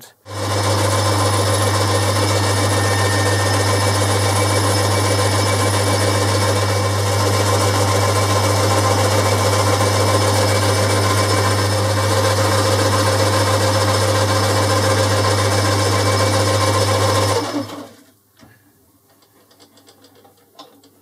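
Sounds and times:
boring bar cutting metal: 0.3s - 11.9s
lathe motor hum: 0.3s - 18.0s.

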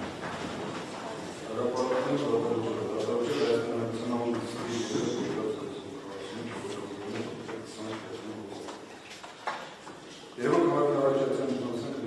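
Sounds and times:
man reading aloud: 1.5s - 8.8s, 10.4s - 12.0s.

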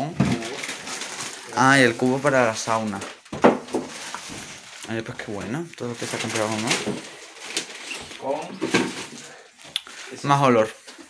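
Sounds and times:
rustling plastic bags: 0.0s - 11.0s.

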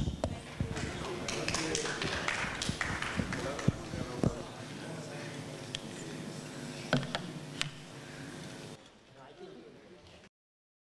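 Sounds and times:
audience murmuring: 0.2s - 8.8s.

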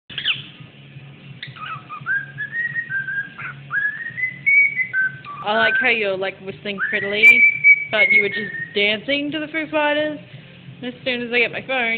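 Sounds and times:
cockatiel whistling: 0.1s - 0.5s, 1.4s - 6.1s, 6.7s - 8.9s.

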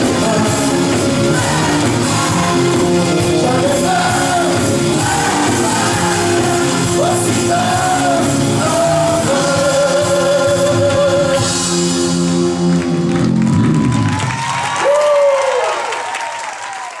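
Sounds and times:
audience applauding and cheering: 0.0s - 9.6s, 12.3s - 17.0s
live rock band playing: 0.0s - 14.4s.

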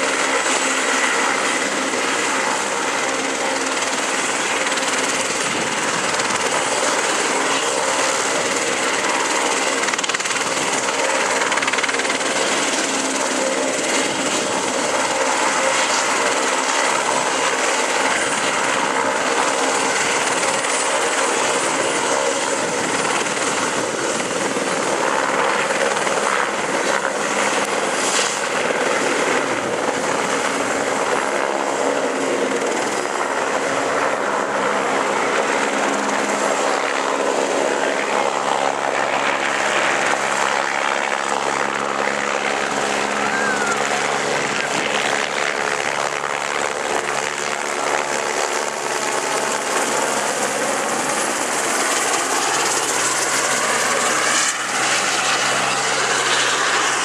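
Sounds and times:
helicopter turbine and rotor din: 0.0s - 57.0s.

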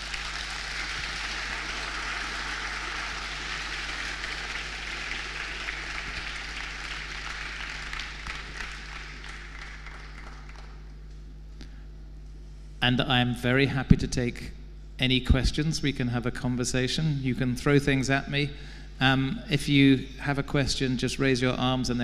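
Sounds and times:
audience applauding: 0.0s - 10.9s.

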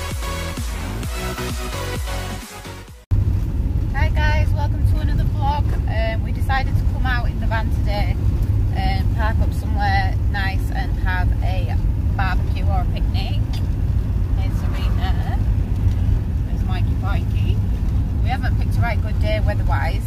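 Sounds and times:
engine and road rumble: 0.0s - 20.0s
voices talking: 14.3s - 15.8s.

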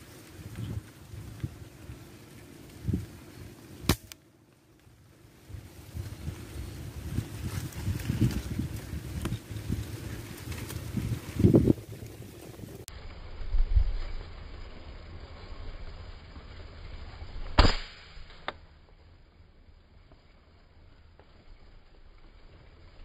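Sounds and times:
microphone handling and wind noise: 0.3s - 2.0s, 5.5s - 12.9s
air rifle shot: 17.6s - 18.3s.

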